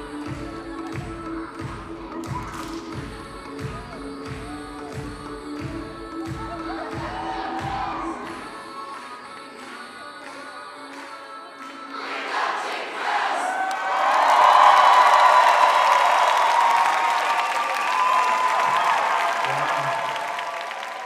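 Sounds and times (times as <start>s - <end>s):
dance music: 0.0s - 13.4s
audience cheering and applauding: 6.3s - 9.7s, 12.0s - 21.0s.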